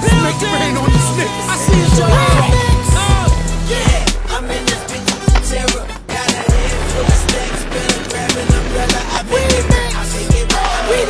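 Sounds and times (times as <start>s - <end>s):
hip-hop music: 0.0s - 11.0s
skates clacking on concrete: 3.0s - 11.0s
skate wheels rolling: 3.6s - 11.0s.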